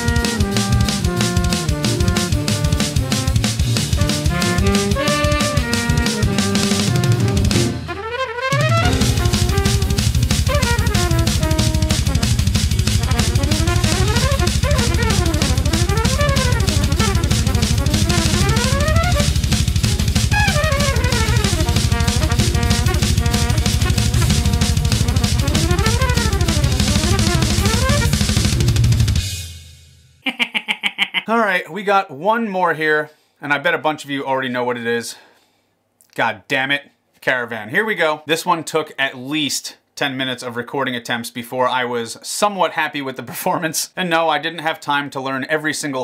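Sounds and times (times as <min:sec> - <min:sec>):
fast metal drumming: 0:00.0 - 0:08.0, 0:08.6 - 0:29.5
bebop jazz with trumpet runs: 0:00.0 - 0:29.2.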